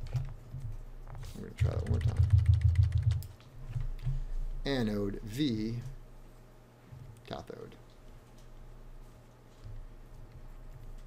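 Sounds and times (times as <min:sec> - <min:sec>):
steady low hum: 0:00.0 - 0:11.0
keyboard keys clicking: 0:01.6 - 0:03.3.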